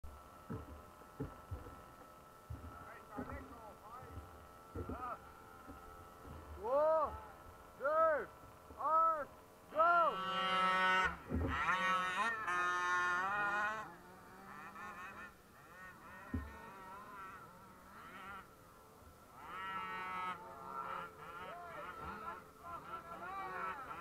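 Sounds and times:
model car motors buzzing: 0.1 - 24.0.

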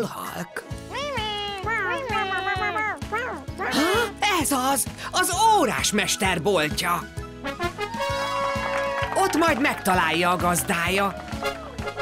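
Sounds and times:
cartoonish cat meowing: 0.9 - 4.2.

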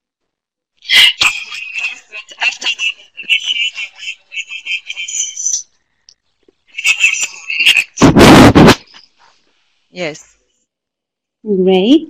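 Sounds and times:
garbled voice over bad connection: 0.9 - 5.6, 6.7 - 9.1.

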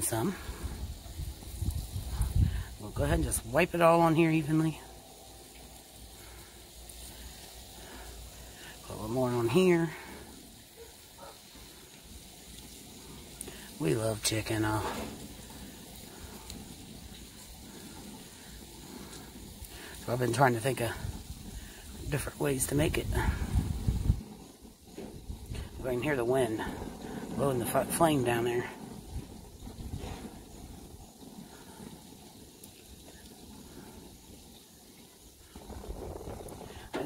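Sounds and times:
wind rumbling on microphone: 0.0 - 4.3, 14.6 - 37.0
grill hissing and sizzling: 0.0 - 37.0.

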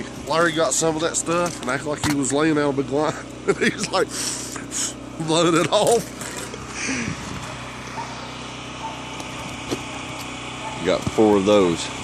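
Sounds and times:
small engine running: 0.0 - 12.0
person laughing: 3.4 - 4.9, 6.7 - 7.3.

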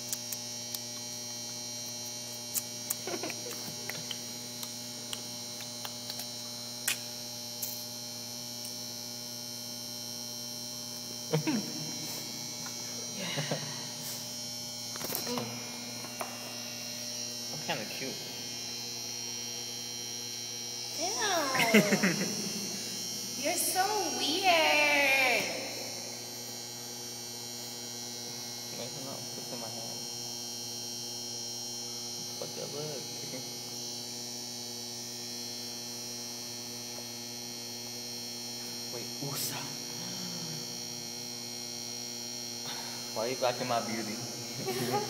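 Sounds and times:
electrical mains hum: 0.0 - 45.0.

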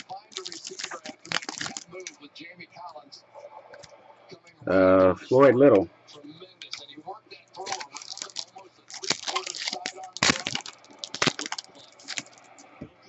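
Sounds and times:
trading cards snapping and rustling: 0.0 - 2.1, 7.6 - 12.5.

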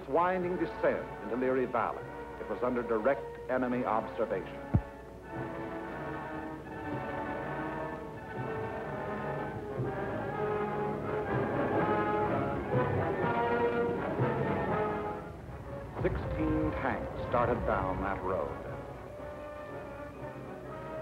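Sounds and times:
orchestral brass chords: 0.2 - 21.0.

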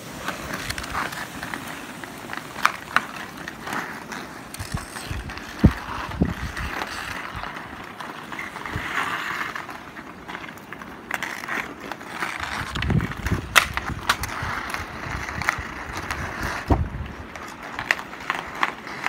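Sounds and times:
skate blades scraping on ice: 0.0 - 19.0
hockey sticks knocking a puck: 0.2 - 19.0.

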